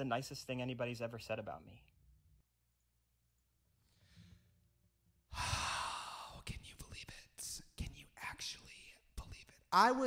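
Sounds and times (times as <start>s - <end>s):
breathy sigh: 5.3s - 6.4s.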